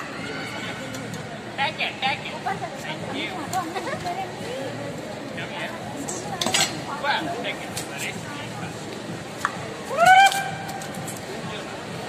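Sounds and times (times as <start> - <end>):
murmur of background chatter: 0.0 - 12.0.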